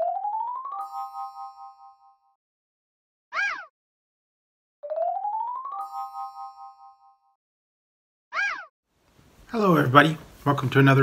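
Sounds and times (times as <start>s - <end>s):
electronic chime chord: 0.1s - 2.3s.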